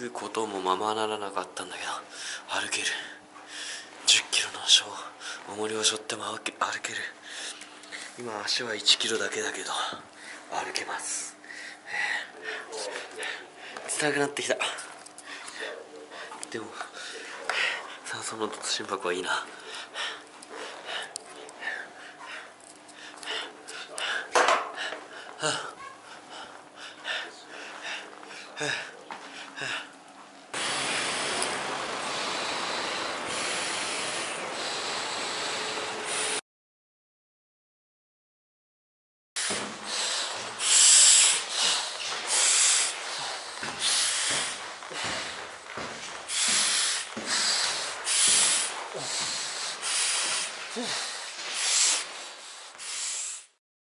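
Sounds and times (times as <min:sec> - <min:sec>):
faint steady hum: 0:00.0 - 0:36.4
man breathing hard: 0:03.1 - 0:03.9, 0:11.4 - 0:13.9, 0:19.5 - 0:30.0, 0:30.6 - 0:36.4, 0:39.4 - 0:53.6.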